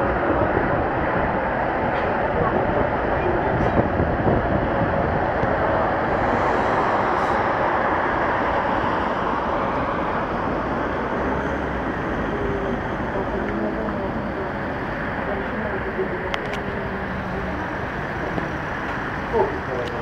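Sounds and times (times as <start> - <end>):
tram rumbling in motion: 0.0 - 20.0.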